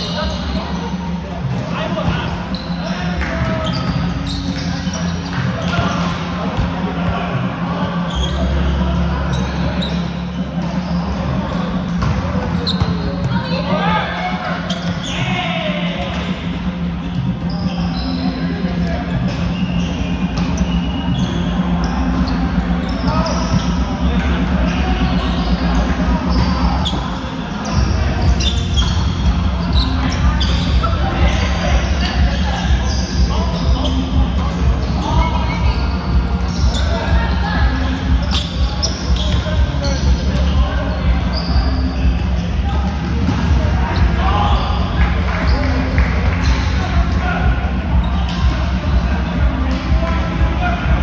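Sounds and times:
background chatter of players: 0.0 - 51.0
balls bouncing on hardwood court: 0.3 - 8.4, 10.6 - 21.5, 27.6 - 51.0.

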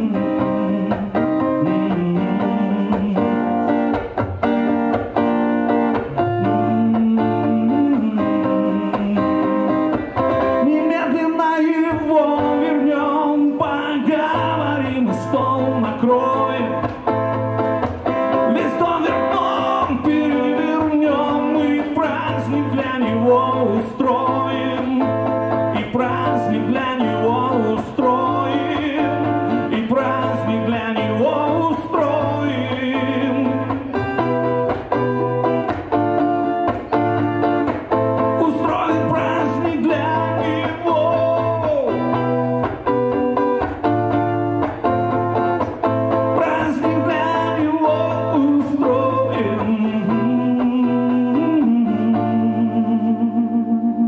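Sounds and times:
electric guitar song: 0.0 - 54.0.

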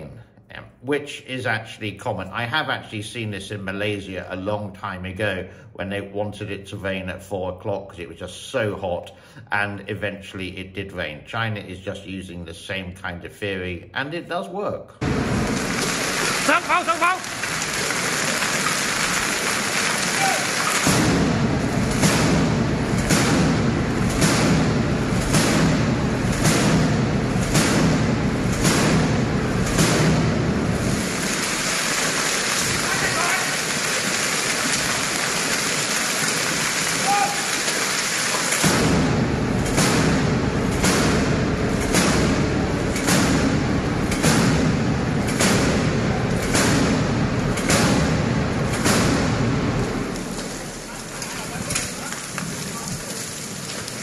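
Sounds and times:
hail and rain falling: 15.0 - 23.2, 30.6 - 39.1, 49.8 - 54.0
anti-aircraft gun firing: 20.7 - 37.0, 37.7 - 50.8.

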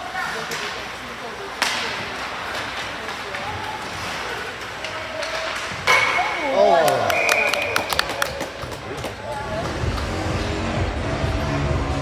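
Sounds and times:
hockey sticks and puck clacking: 0.0 - 10.5
music over speakers: 9.7 - 12.0.

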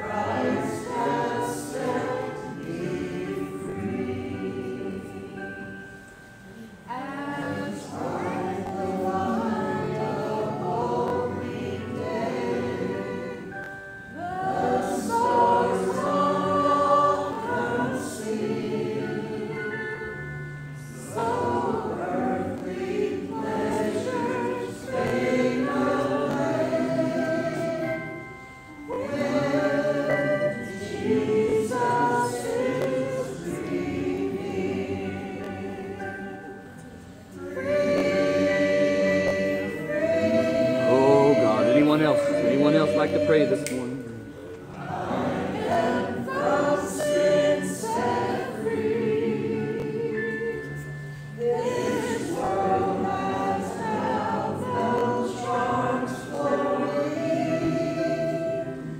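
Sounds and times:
group singing slow hymn: 0.0 - 58.9.

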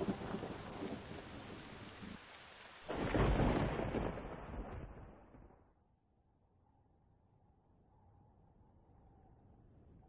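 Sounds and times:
deep roll of thunder: 0.0 - 1.5, 2.9 - 5.6
steady rain falling: 0.0 - 5.6.

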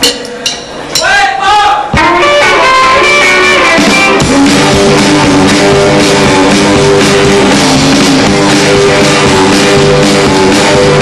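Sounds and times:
country-rock band playing: 2.0 - 11.0.

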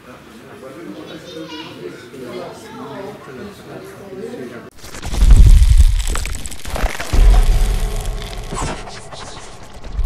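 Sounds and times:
crackling spark-like noise: 4.8 - 10.0
deep boom: 4.8 - 10.0.

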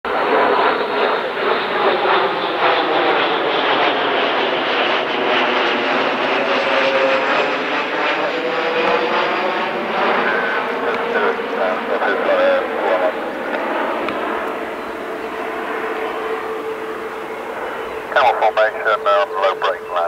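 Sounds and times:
jets passing overhead: 0.1 - 20.0.

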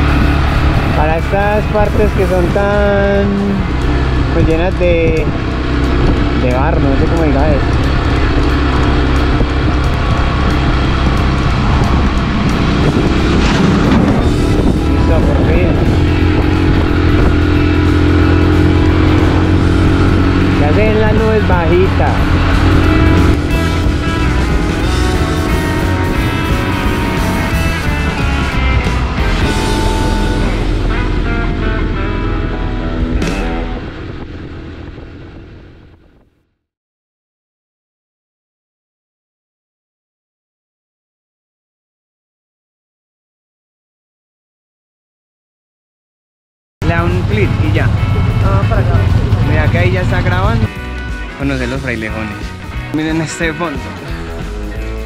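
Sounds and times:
small motorcycle engine running: 0.0 - 36.1, 46.9 - 51.2
background music with singing: 50.4 - 55.0.

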